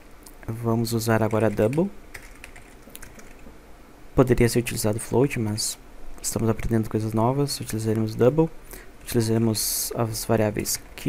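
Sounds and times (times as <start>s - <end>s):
keyboard typing: 1.2s - 3.5s.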